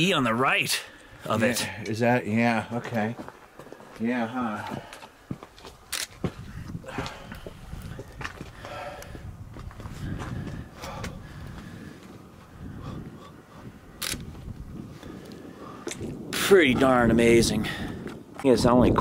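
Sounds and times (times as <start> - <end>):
wind buffeting microphone: 4.2 - 19.0
sharp clicks: 5.9 - 6.2, 14.0 - 14.3.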